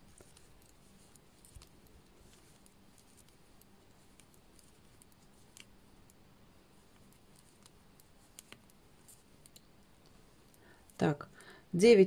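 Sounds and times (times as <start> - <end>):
knitting needles clicking: 0.0 - 11.1.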